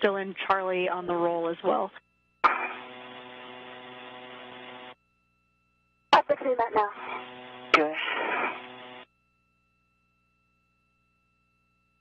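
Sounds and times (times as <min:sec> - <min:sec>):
radio hiss: 0:02.4 - 0:05.0, 0:06.2 - 0:09.0.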